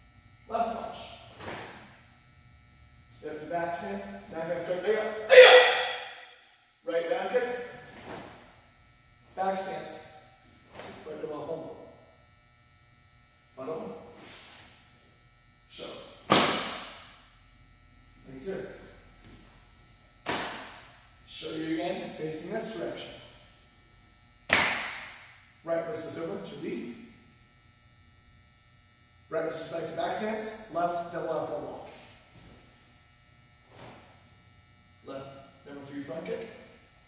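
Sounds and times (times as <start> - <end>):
faint steady tones: 0.0 - 16.3
sharp snap of uniform: 1.4 - 1.8, 16.2 - 17.1, 20.2 - 20.8, 24.5 - 25.2.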